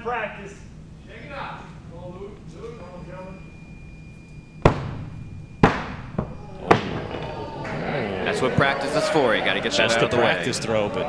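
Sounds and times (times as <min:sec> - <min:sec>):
axes striking wooden boards: 0:04.6 - 0:07.5.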